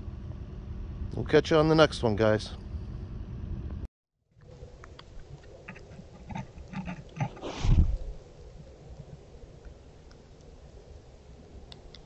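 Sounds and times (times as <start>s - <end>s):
low outdoor rumble: 0.0s - 12.0s
animal snuffling: 4.5s - 11.8s.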